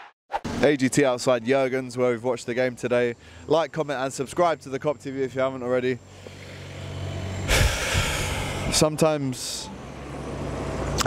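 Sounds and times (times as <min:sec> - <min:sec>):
heavy vehicle engine hum: 0:02.6 - 0:11.0
loud rush of hissing: 0:06.1 - 0:08.9.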